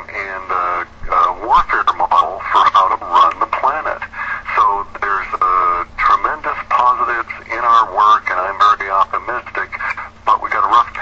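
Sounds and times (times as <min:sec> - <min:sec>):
person talking over radio: 0:00.0 - 0:11.0.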